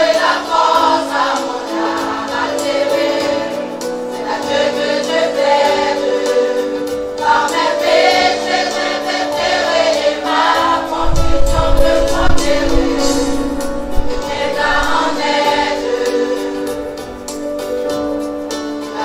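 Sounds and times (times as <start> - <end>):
choir singing held chords: 0.0 - 19.0
deep bass sound: 11.0 - 15.5.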